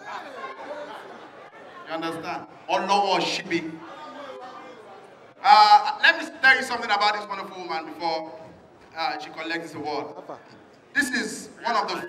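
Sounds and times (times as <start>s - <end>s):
indistinct chatter of voices: 0.0s - 7.5s.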